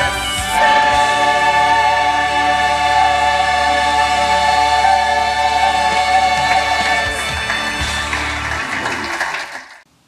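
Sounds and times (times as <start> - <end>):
church choir singing: 0.0 - 8.4.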